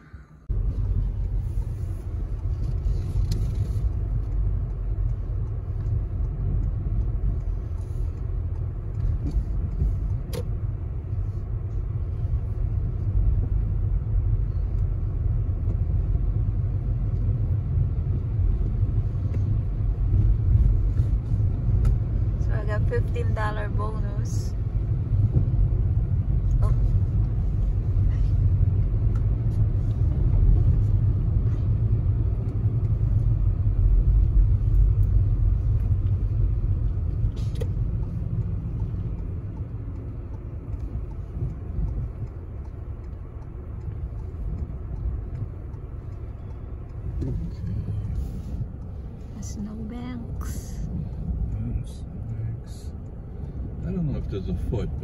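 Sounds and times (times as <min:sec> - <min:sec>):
car driving on slushy road: 0:00.5 - 0:55.0.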